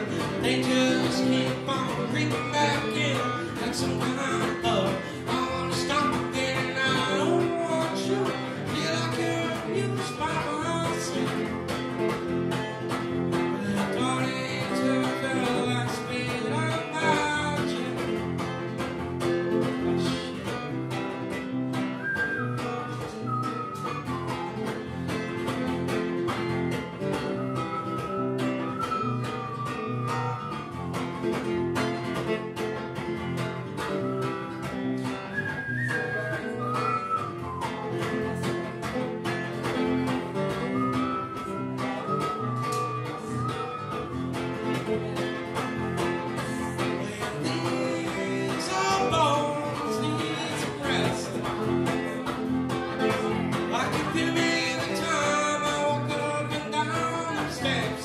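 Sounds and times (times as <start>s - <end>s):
acoustic guitar chords: 0.0s - 58.0s
higher guitar melody line: 0.0s - 58.0s.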